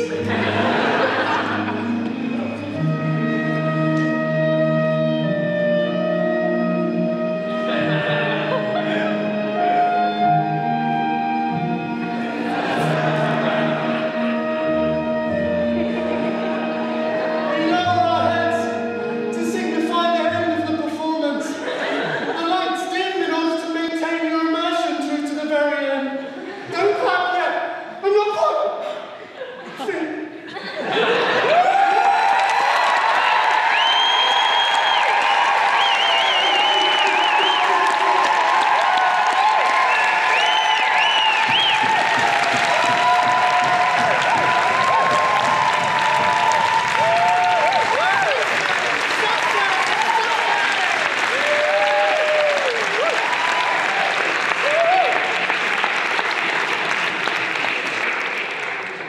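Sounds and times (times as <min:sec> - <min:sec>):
audience applauding: 0:00.0 - 0:02.8, 0:30.9 - 0:59.0
audience cheering: 0:30.9 - 0:59.0.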